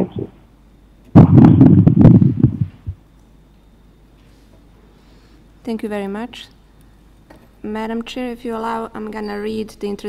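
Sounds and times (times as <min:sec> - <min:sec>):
distorted crackling noise burst: 0:01.1 - 0:03.0.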